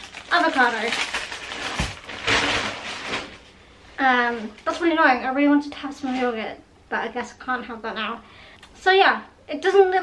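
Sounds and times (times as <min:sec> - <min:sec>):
plastic bags rustling: 0:00.0 - 0:05.1.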